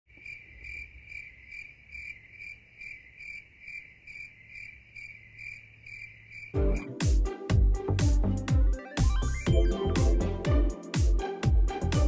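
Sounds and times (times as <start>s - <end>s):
crickets chirping: 0.1s - 6.6s.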